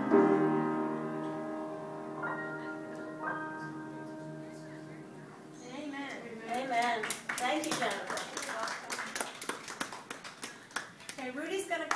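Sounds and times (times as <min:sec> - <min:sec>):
scattered hand claps: 0:06.5 - 0:11.2.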